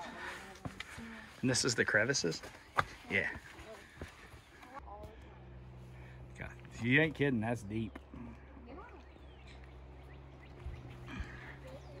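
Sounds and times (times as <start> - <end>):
footstep on stone path: 0.0 - 5.2
low outdoor background: 0.0 - 12.0.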